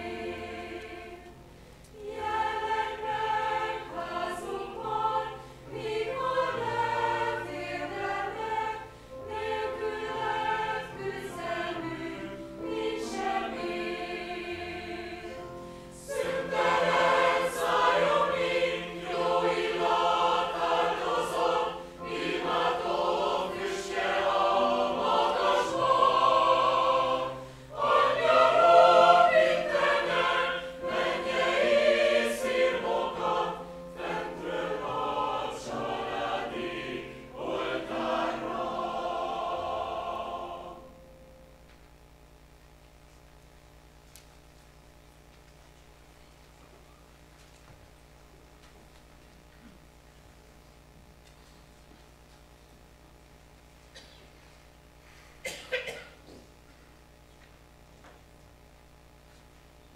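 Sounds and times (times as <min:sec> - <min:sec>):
mixed choir singing: 0:00.0 - 0:41.2.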